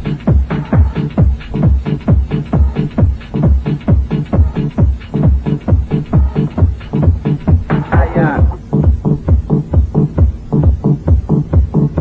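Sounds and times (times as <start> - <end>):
house music kick drum and bassline: 0.0 - 12.0.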